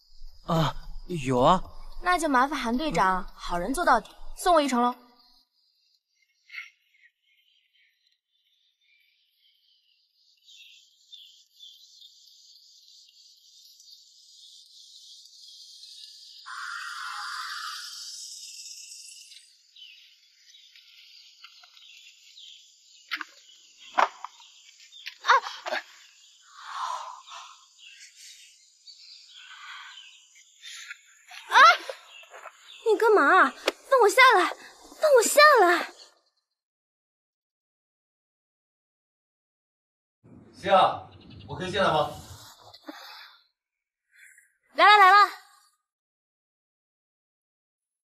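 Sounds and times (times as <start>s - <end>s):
insects chirring: 0.0s - 36.4s, 40.6s - 43.2s.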